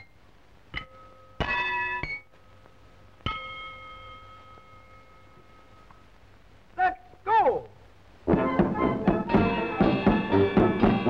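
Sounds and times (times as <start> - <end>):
film soundtrack hum and hiss: 0.0 - 11.0
bell-like ringing tones: 0.8 - 2.6, 3.2 - 6.1.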